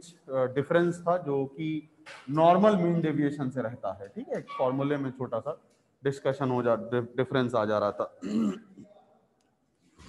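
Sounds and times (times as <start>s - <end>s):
man clearing his throat: 8.2s - 9.0s.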